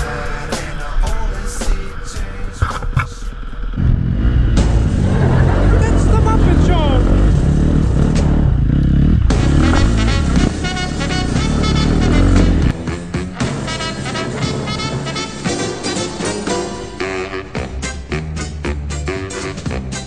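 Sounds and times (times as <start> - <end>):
music: 0.0 - 3.4, 4.6 - 7.3, 9.2 - 20.0
dirt bike engine running: 0.0 - 15.3.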